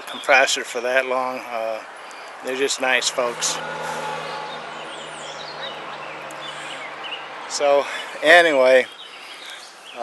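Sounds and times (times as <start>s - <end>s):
steady low hum: 3.0s - 7.6s.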